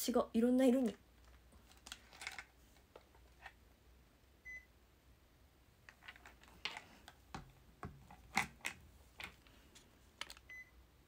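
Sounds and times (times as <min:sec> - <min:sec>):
faint high beep: 0:04.4 - 0:04.7.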